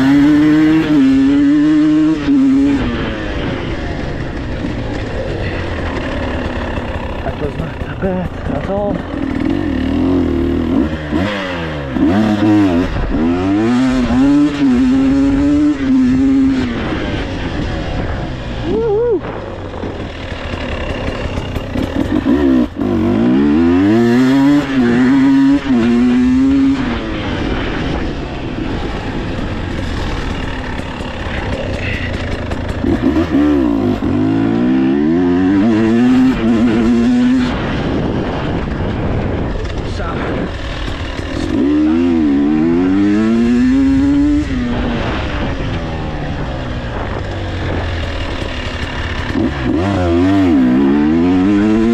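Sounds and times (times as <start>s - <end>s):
two-stroke motorcycle engine revving: 0.0s - 51.9s.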